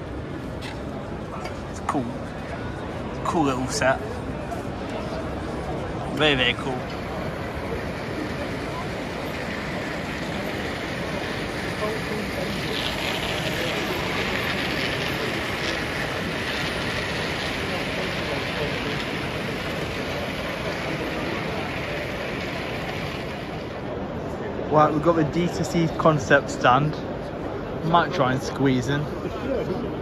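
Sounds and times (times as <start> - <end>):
crowd hubbub in a hall: 0.0 - 30.0
model train running on track: 0.0 - 30.0.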